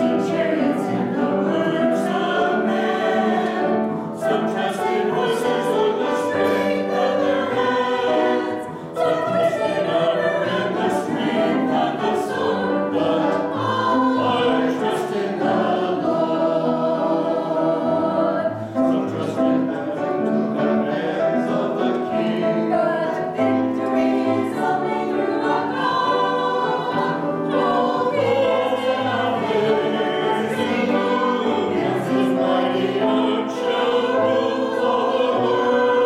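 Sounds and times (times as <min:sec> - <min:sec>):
church choir singing: 0:00.0 - 0:36.0
piano accompaniment: 0:00.0 - 0:36.0.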